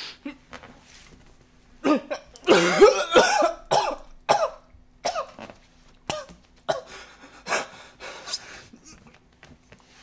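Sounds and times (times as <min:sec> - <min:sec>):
man coughing: 0:01.8 - 0:05.4.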